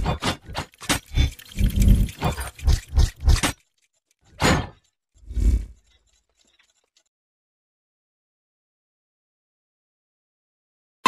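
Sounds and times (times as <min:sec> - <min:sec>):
heavy mechanical metal clanks: 0:00.0 - 0:07.1.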